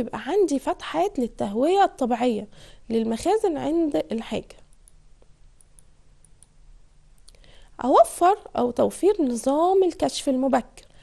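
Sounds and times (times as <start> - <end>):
woman speaking: 0.0 - 4.7, 7.8 - 10.9
faint room hum: 0.0 - 11.0.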